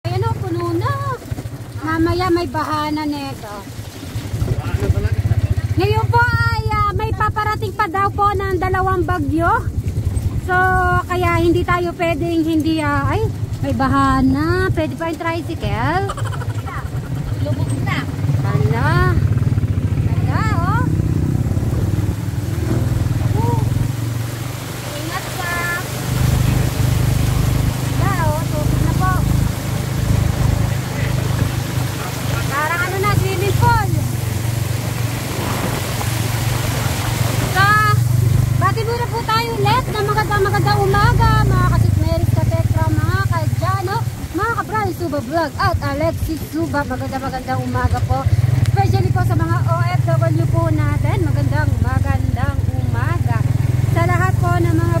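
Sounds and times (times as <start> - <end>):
people's voices: 0.0 - 3.7, 10.4 - 21.1, 22.7 - 24.0, 24.8 - 27.2, 27.8 - 29.5, 30.4 - 34.3, 37.4 - 55.0
motorcycle engine running: 0.0 - 55.0.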